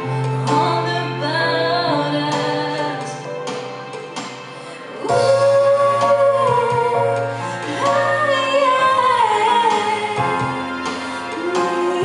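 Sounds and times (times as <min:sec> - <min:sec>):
woman singing into a microphone: 0:00.0 - 0:03.4, 0:04.6 - 0:12.0
instrumental backing music: 0:00.0 - 0:12.0.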